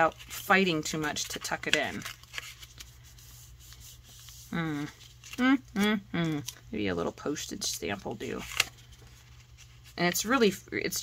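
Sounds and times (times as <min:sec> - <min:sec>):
paper envelope rustling: 0:00.0 - 0:10.5
low steady hum: 0:00.0 - 0:11.0.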